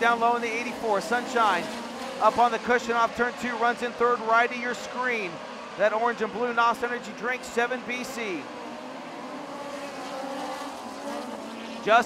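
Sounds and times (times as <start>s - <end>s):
race car engines droning: 0.0s - 12.0s.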